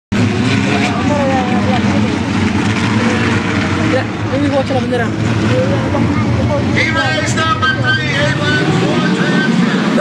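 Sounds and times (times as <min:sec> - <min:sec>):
race car engines droning: 0:00.1 - 0:10.0
voices: 0:00.6 - 0:10.0.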